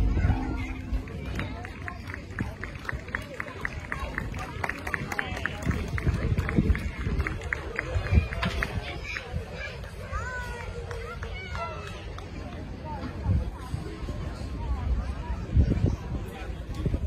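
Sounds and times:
low rumble: 0.0s - 3.0s
indistinct crowd voices: 0.0s - 17.0s.

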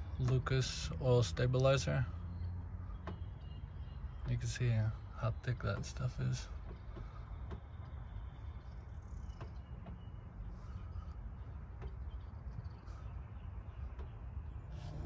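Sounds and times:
low steady rumble: 0.0s - 15.0s.

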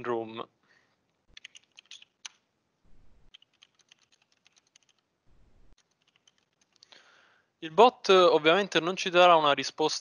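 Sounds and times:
faint keyboard typing: 1.3s - 2.4s, 3.3s - 7.0s.

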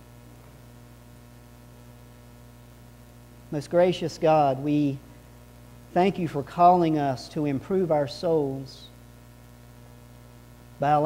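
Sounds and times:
low electrical hum: 0.0s - 11.0s
man speaking: 3.5s - 5.1s, 5.9s - 9.0s, 10.8s - 11.0s.

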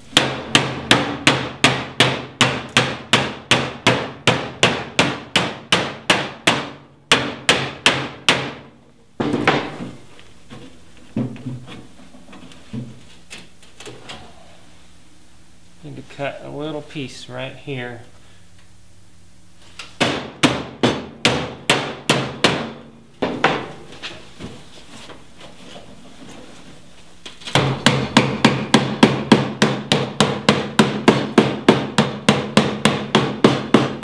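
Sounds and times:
rubber mallet tapping sheet steel: 0.1s - 8.7s, 20.0s - 23.7s, 27.5s - 34.0s.

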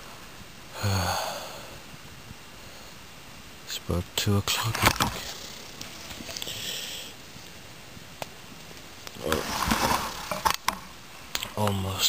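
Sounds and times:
handling rustling: 8.6s - 10.8s.

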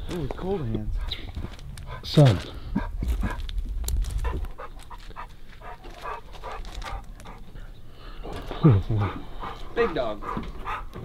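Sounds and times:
dog panting: 0.8s - 11.0s.

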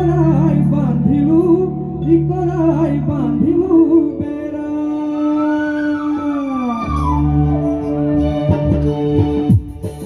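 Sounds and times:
downward gliding pitch: 4.8s - 9.7s.

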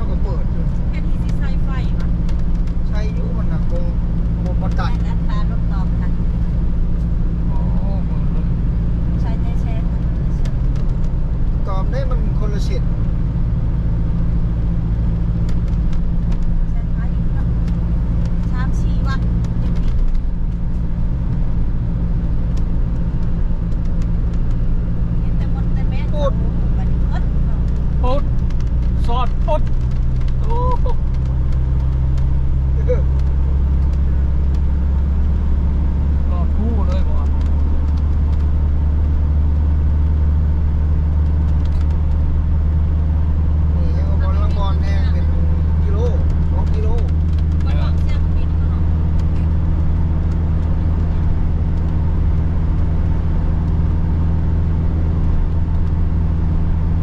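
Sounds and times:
car engine and road noise: 0.0s - 57.0s.

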